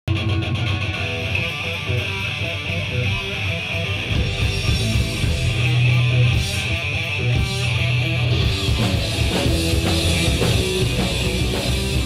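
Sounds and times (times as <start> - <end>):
electric guitars strumming: 0.1 - 12.0
live rock band playing: 0.1 - 12.0.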